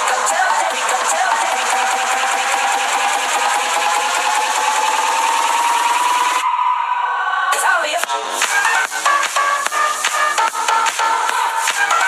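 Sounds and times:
synth tone rising in pitch: 0.0 - 9.6.

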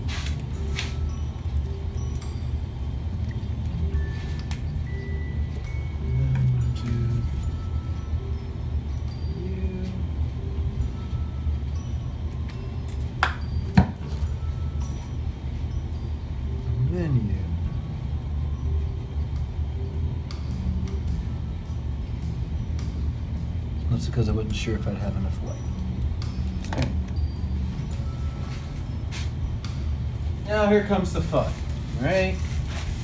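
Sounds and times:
faint music notes: 0.0 - 33.0
steady low hum: 0.0 - 33.0.

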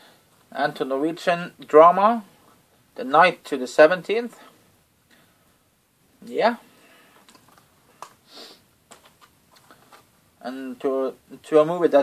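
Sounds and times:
person sniffing: 8.2 - 8.7.

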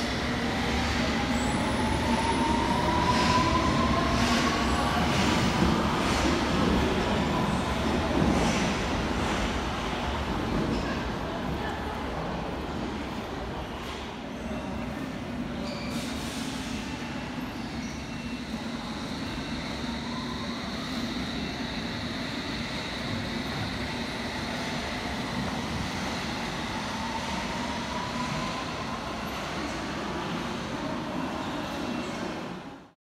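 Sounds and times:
train rumbling through station: 0.0 - 33.0.

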